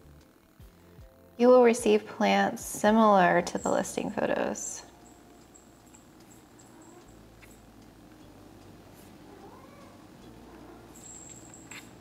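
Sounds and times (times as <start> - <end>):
cat purring: 3.5 - 12.0
cat meowing: 9.3 - 11.0.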